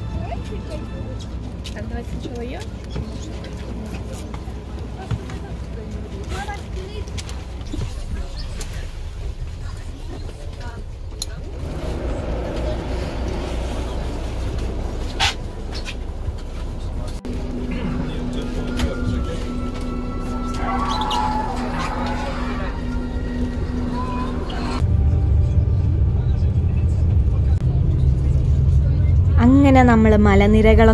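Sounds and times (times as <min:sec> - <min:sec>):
bus cabin rumble: 0:00.0 - 0:30.9
passengers talking: 0:00.0 - 0:30.9.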